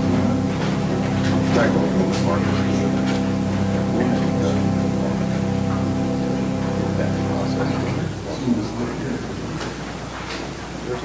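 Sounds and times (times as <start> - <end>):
church organ chord: 0.0 - 9.5.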